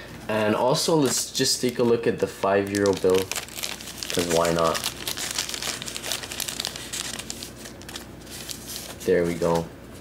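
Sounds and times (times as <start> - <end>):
plastic bag crinkling: 0.9 - 9.6.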